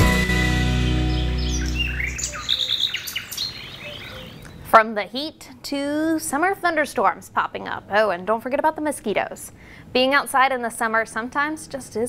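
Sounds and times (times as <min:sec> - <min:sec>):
music sting chord: 0:00.0 - 0:02.4
high bird chirps: 0:00.7 - 0:04.6.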